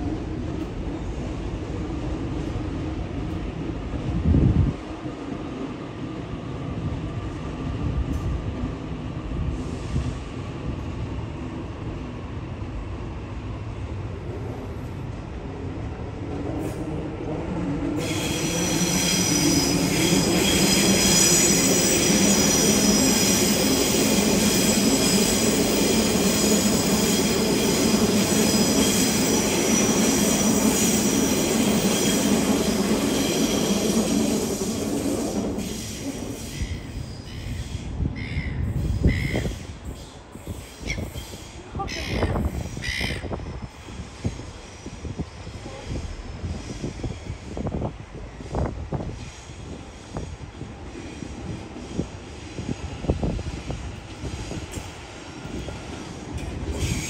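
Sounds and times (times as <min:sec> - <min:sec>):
train rumbling past: 0:00.0 - 0:57.0
high wheel squeal: 0:18.0 - 0:44.9, 0:56.7 - 0:57.0.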